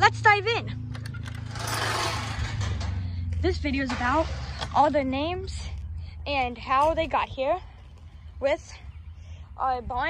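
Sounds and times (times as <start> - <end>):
steady low hum: 0.0 - 10.0
wooden gate scraping rasp: 1.0 - 3.2, 3.8 - 4.9.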